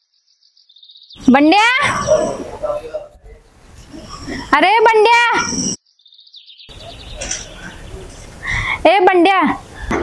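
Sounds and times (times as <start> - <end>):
outdoor background: 0.0 - 10.0
woman calling loudly: 1.2 - 2.2, 4.5 - 5.5, 8.8 - 9.6.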